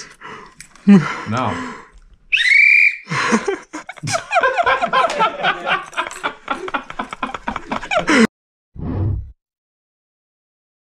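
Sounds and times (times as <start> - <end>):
people laughing excitedly: 3.1 - 8.3.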